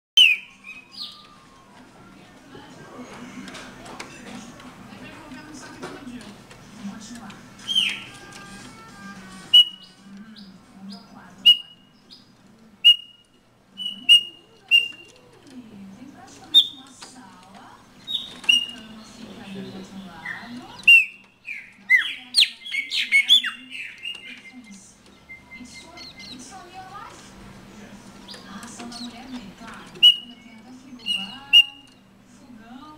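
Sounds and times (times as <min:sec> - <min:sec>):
bird whistling calls: 0:00.2 - 0:01.6, 0:07.6 - 0:08.1, 0:09.5 - 0:10.0, 0:11.0 - 0:15.1, 0:16.5 - 0:16.9, 0:18.0 - 0:19.0, 0:20.2 - 0:26.4, 0:29.9 - 0:32.0.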